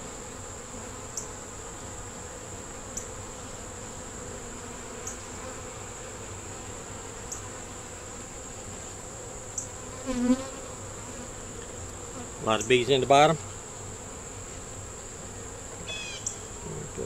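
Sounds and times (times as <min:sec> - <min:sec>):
honey bees humming: 0:00.0 - 0:17.0.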